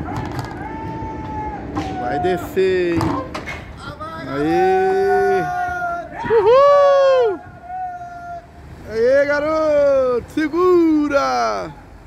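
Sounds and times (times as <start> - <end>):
man whooping cheer: 0.4 - 2.5, 4.2 - 8.5.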